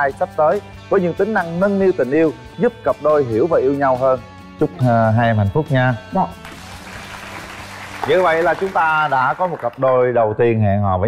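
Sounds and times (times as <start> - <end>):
audience applauding: 6.4 - 10.1.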